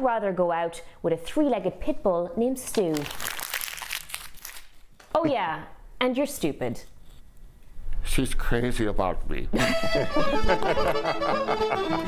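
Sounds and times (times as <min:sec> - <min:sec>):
paper being crumpled: 0:02.7 - 0:04.9.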